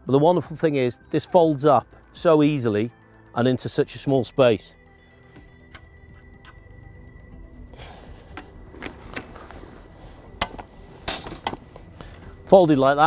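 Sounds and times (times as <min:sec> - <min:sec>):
quiet background music: 0:00.0 - 0:13.0
steel frame clicks and knocks: 0:10.4 - 0:11.7.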